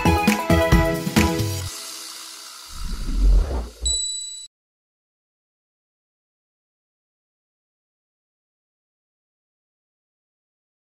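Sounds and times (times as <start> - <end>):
low whoosh logo sound: 2.7 - 3.9
short high beep: 3.8 - 4.5.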